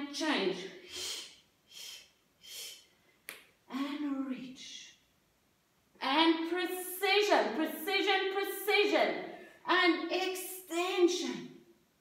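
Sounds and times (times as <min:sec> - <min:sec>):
woman speaking: 0:00.0 - 0:01.2, 0:03.7 - 0:05.0, 0:06.0 - 0:11.6.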